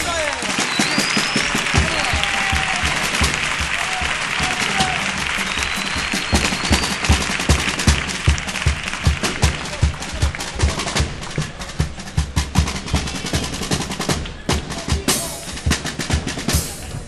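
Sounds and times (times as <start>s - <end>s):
audience applauding and cheering: 0.0s - 12.4s
bass drum steady beat: 1.6s - 17.0s.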